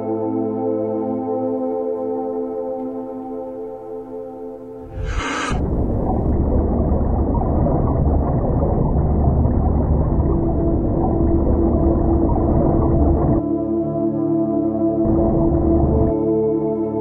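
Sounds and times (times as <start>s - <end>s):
steady held tone: 4.8s - 6.2s
low underwater rumble: 4.8s - 13.4s.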